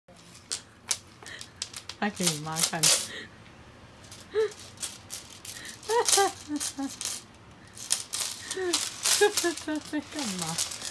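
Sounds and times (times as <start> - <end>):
metal chain clinking: 0.3 - 3.1, 4.0 - 10.9.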